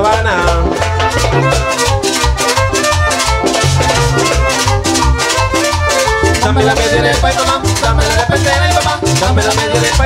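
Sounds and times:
bass line: 0:00.0 - 0:10.0
melody instruments: 0:00.0 - 0:10.0
rattling hand percussion: 0:00.0 - 0:10.0.

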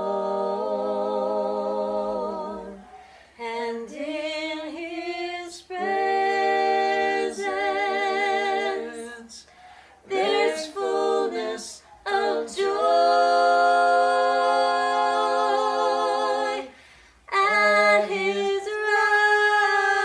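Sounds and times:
people singing unaccompanied: 0:00.0 - 0:20.0.

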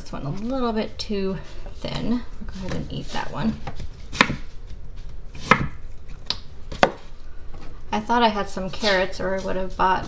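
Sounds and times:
knife striking cutting board: 0:04.1 - 0:04.5.

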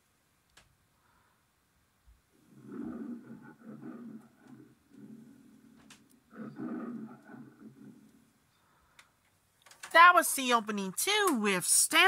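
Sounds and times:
lion roaring: 0:02.4 - 0:08.4
lion growling: 0:02.4 - 0:08.8.

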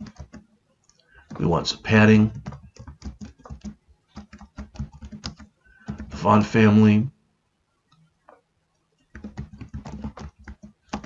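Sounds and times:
typing on computer keyboard: 0:00.0 - 0:06.2, 0:09.1 - 0:11.0.

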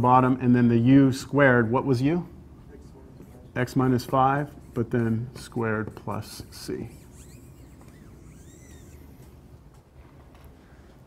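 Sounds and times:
faint high squeaks: 0:06.9 - 0:09.4.

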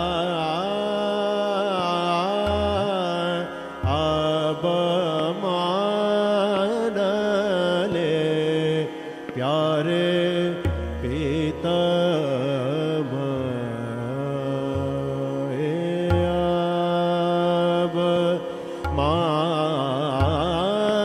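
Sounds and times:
man singing wordless phrases: 0:00.0 - 0:21.0.

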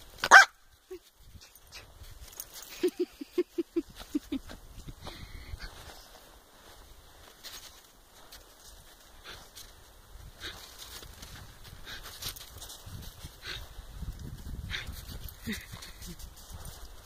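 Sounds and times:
snow crunching: 0:05.6 - 0:13.9.

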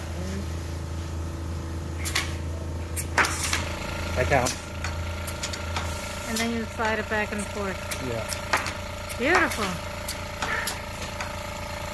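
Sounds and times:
steady low hum: 0:00.0 - 0:11.9.

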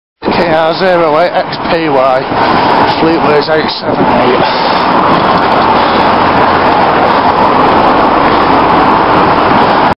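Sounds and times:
car overtaking: 0:00.2 - 0:09.9
road noise: 0:00.2 - 0:09.9
wind rushing: 0:00.2 - 0:09.9.

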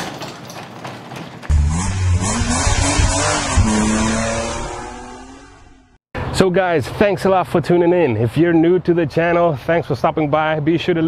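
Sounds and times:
rushing noise: 0:01.5 - 0:05.9
car engine starting and revving: 0:01.5 - 0:06.0.

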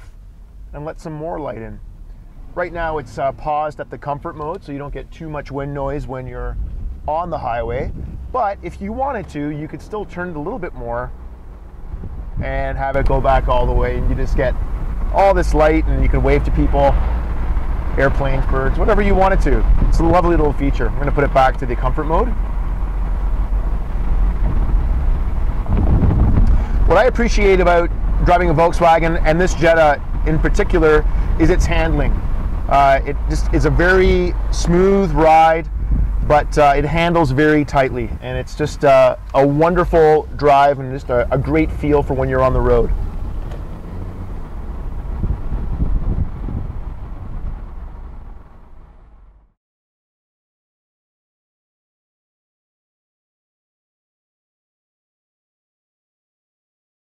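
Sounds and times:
road and wind rumble in car: 0:00.0 - 0:49.6.

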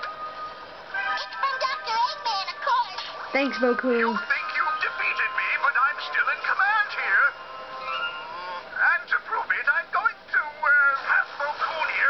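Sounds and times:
quiet background music: 0:00.0 - 0:12.0
high wavering squeaky sound: 0:07.6 - 0:08.6.

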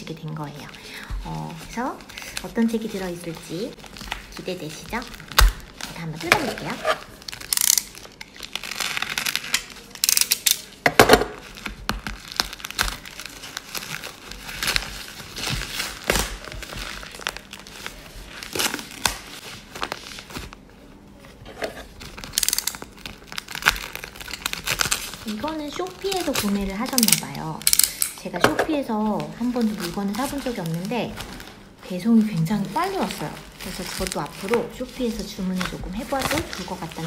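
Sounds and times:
plastic wrapping rustling and tearing: 0:00.0 - 0:37.0.

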